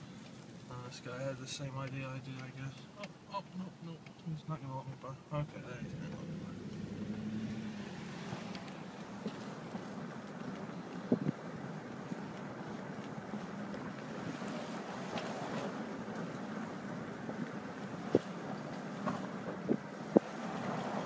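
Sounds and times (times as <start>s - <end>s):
car driving over snow: 4.7s - 21.0s.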